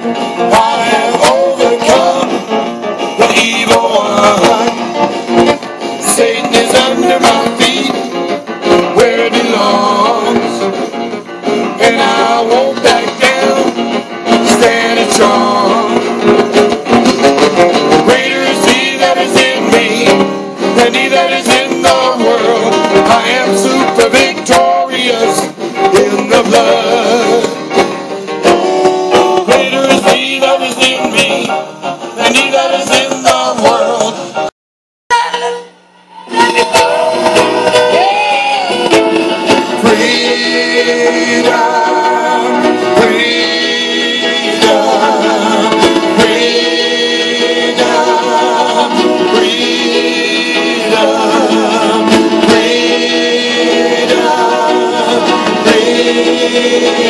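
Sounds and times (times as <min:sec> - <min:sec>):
band accompaniment: 0:00.0 - 0:34.5, 0:35.1 - 0:57.0
choir and soloist singing: 0:00.5 - 0:02.4, 0:03.2 - 0:04.8, 0:06.0 - 0:08.0, 0:08.9 - 0:10.6, 0:11.8 - 0:13.7, 0:14.4 - 0:16.0, 0:18.0 - 0:27.6, 0:39.8 - 0:57.0.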